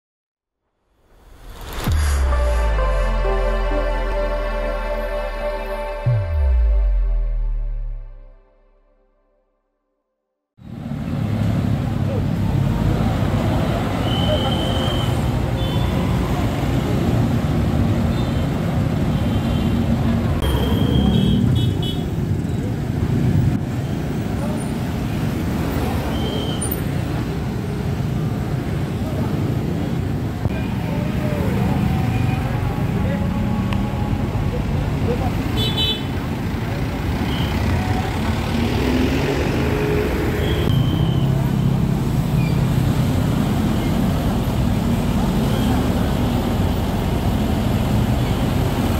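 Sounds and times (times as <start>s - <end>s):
car and motorbike engines: 10.6s - 48.9s.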